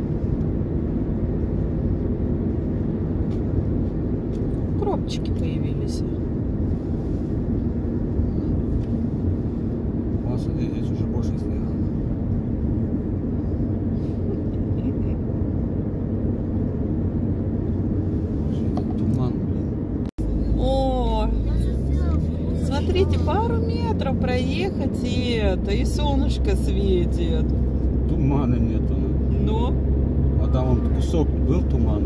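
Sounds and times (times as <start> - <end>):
car road and engine drone: 0.0 - 32.0
people talking: 4.8 - 6.2, 20.4 - 27.4, 28.1 - 29.8, 30.4 - 32.0.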